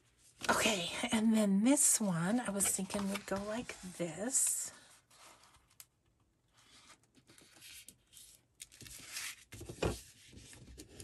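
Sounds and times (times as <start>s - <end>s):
paper rustling and rubbing: 2.5s - 4.4s.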